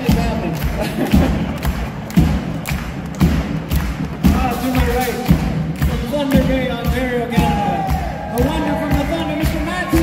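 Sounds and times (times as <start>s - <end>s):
drum beats: 0.0s - 10.0s.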